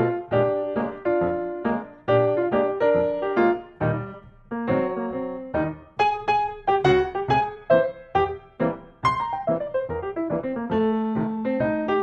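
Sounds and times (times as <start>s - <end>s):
piano melody: 0.0s - 12.0s.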